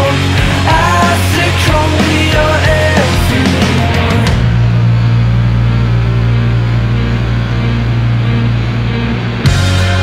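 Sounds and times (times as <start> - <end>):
rock band instrumental: 0.0 - 10.0.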